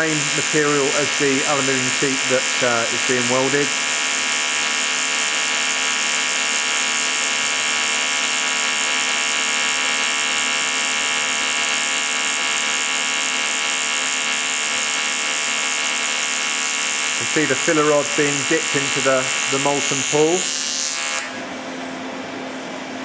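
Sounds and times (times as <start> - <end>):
welding arc buzzing: 0.0 - 22.2.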